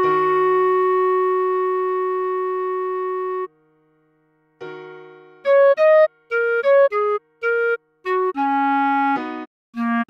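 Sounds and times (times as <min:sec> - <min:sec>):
clarinet holding long note: 0:00.0 - 0:03.5, 0:05.4 - 0:10.0.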